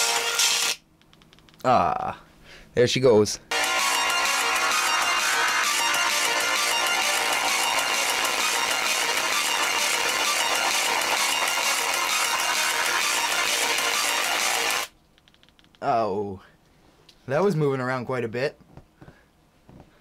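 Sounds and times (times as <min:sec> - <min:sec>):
song through thin tweeter: 0:03.5 - 0:14.9.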